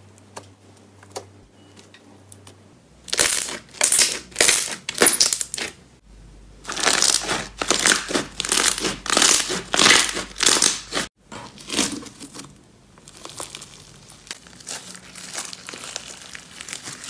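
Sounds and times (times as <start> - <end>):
slime crackling and squelching: 3.1 - 5.8, 6.6 - 17.0.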